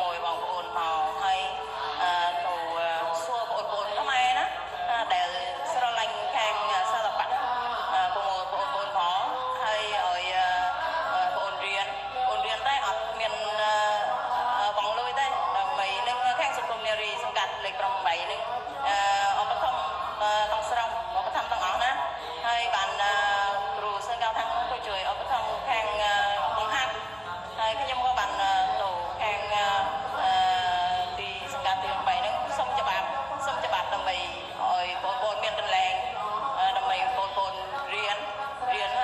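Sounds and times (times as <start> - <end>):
song with singing voice: 0.0 - 39.0.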